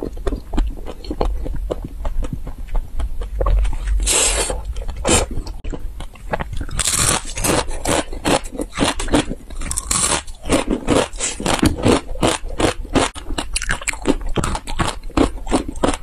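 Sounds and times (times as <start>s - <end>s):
crunchy snack being chewed: 0.0s - 16.0s.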